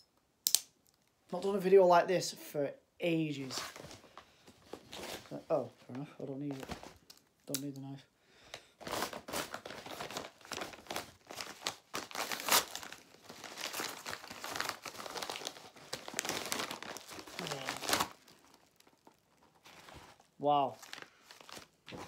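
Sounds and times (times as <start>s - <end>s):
plastic bag tearing and crinkling: 8.8s - 22.0s.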